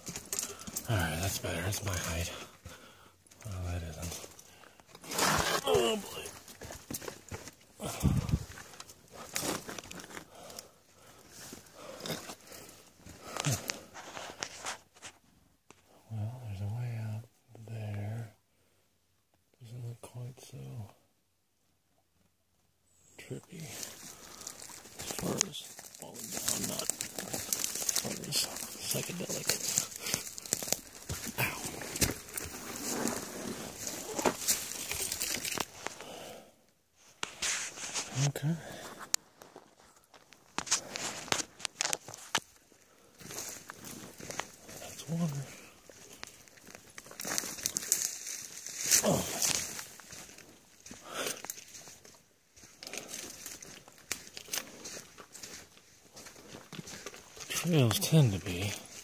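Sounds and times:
brush and twigs crackling: 0:00.0 - 0:15.2, 0:23.5 - 0:36.2, 0:37.0 - 0:59.0.

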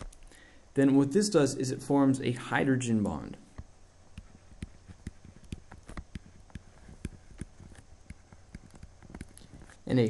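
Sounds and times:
faint low hum: 0:00.0 - 0:10.0
stylus tapping on pen tablet: 0:04.2 - 0:09.8.

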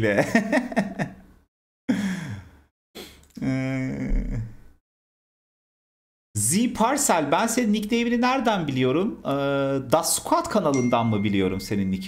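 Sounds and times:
man laughing: 0:00.0 - 0:01.2, 0:01.9 - 0:02.5, 0:03.4 - 0:04.6
short breath: 0:01.9 - 0:03.3
man sighing: 0:01.9 - 0:04.6
held low vocal sound: 0:03.3 - 0:04.6.

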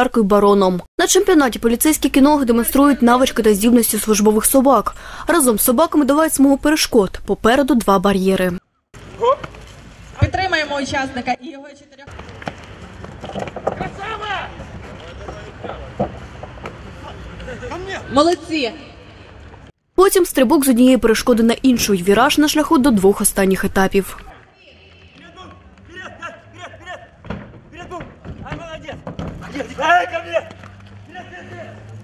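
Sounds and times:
people talking: 0:00.0 - 0:08.6, 0:20.0 - 0:27.1
outdoor noise: 0:00.0 - 0:32.0
man shouting calls: 0:24.6 - 0:27.2.

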